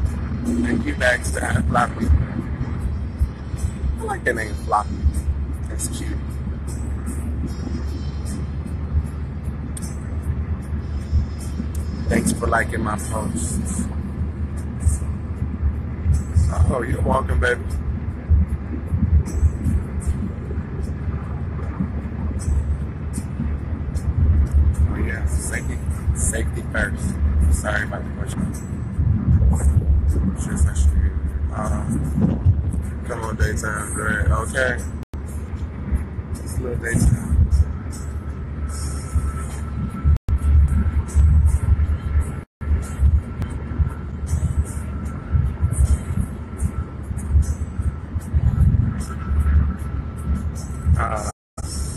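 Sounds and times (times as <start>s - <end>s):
car cabin road rumble: 0.0s - 51.9s.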